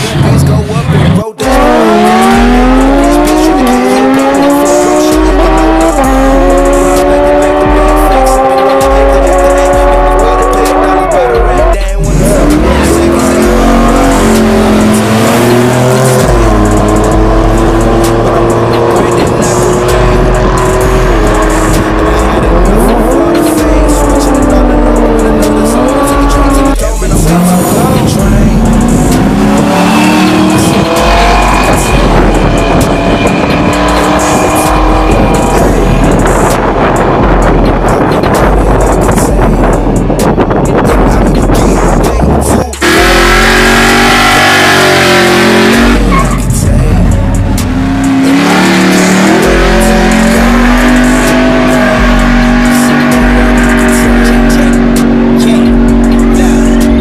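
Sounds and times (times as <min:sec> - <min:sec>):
hip-hop track with heavy bass: 0:00.0 - 0:57.0
racing engines at full throttle: 0:00.0 - 0:57.0.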